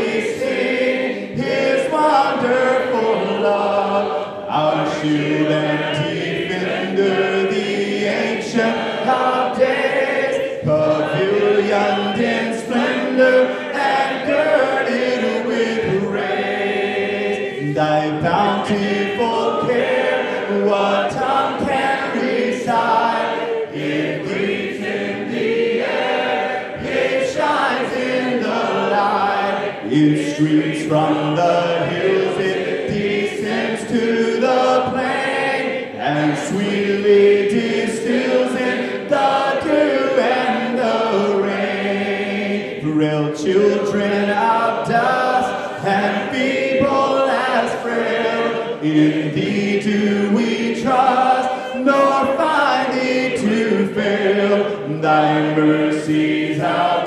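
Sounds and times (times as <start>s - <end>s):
congregation singing a cappella: 0.0s - 57.0s
man singing into microphone: 1.3s - 16.2s, 17.6s - 22.8s, 29.8s - 35.2s, 42.8s - 48.0s, 48.8s - 57.0s.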